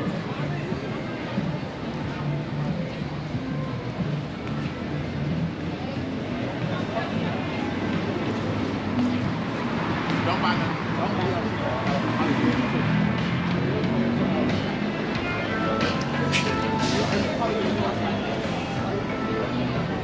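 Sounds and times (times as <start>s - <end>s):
music: 0.0s - 20.0s
passersby talking: 0.0s - 20.0s
traffic hum: 0.0s - 20.0s.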